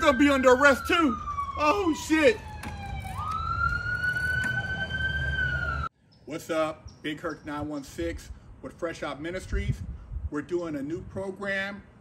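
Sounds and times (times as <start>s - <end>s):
police siren wailing: 0.0s - 5.9s.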